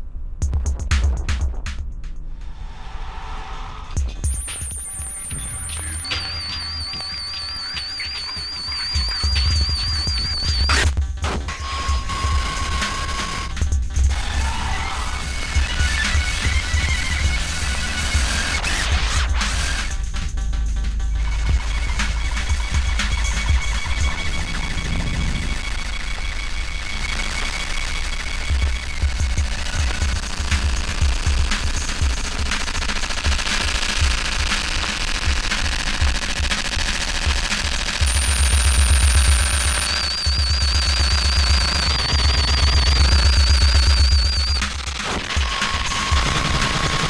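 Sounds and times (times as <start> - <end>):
rapid electronic clicking and crackling: 4.0 - 14.2, 15.0 - 47.0
thin high electronic tones: 4.1 - 10.9, 38.1 - 46.6
heavy low bass: 19.2 - 27.4.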